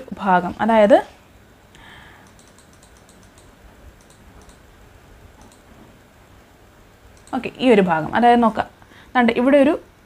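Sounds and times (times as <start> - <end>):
low background noise: 0.0 - 10.0
computer keyboard clicking: 2.2 - 4.7, 5.4 - 5.7, 7.1 - 7.4.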